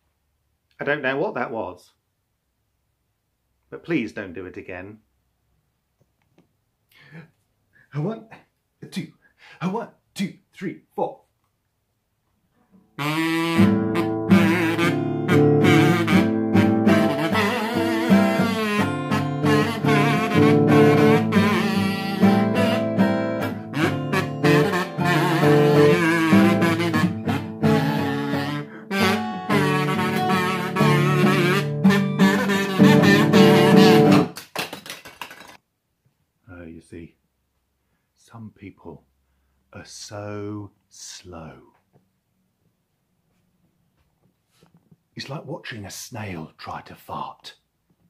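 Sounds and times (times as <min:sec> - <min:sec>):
acoustic guitar strumming: 0:13.0 - 0:34.4
kazoo buzzing a tune: 0:13.0 - 0:34.4.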